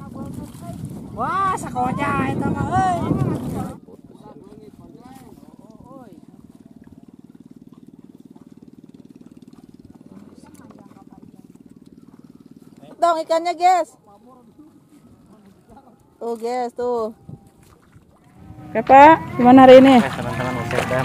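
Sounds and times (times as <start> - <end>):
small motor running: 0.0 - 21.0.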